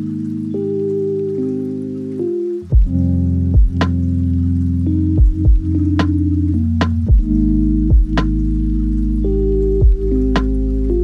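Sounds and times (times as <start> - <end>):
synth chords: 0.0 - 11.0
beat with sharp hits: 2.7 - 4.1, 5.2 - 8.5, 9.8 - 10.6
deep bass: 2.7 - 11.0.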